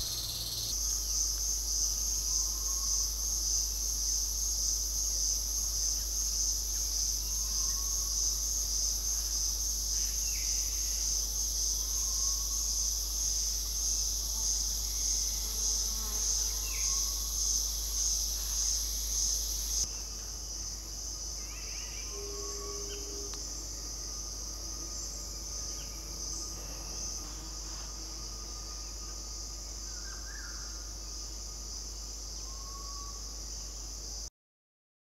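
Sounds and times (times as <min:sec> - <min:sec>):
cicadas droning: 0:00.0 - 0:34.3.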